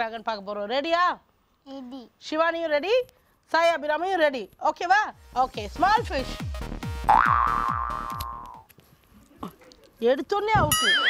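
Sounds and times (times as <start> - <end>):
short falling boing tones: 7.1 - 8.4.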